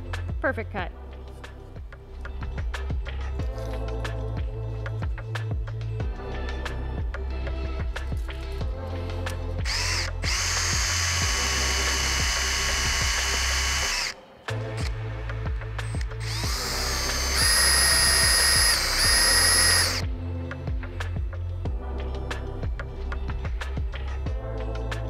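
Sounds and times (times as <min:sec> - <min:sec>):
background music: 0:00.0 - 0:25.0
cordless drill whining: 0:09.7 - 0:14.2, 0:16.0 - 0:20.0.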